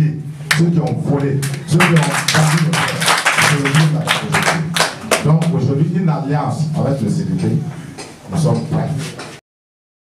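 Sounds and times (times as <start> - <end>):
group clapping: 0.5 - 5.7.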